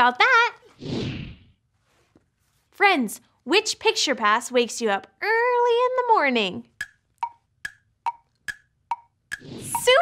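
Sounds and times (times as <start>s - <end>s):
clock ticking: 6.8s - 10.0s.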